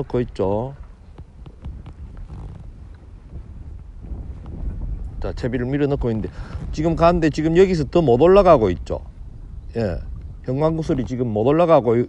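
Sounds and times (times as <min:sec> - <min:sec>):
wind rumble on microphone: 0:00.0 - 0:12.0
faint small ticks: 0:01.1 - 0:03.0.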